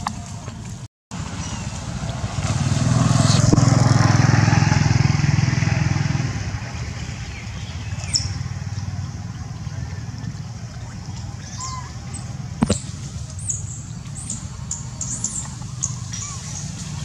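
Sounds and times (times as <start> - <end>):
passing vehicle engine hum: 1.2 - 17.0.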